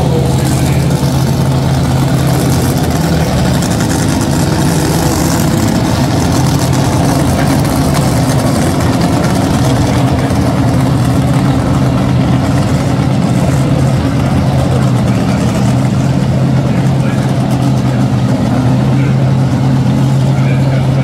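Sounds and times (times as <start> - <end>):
dragster engines idling: 0.0 - 21.0.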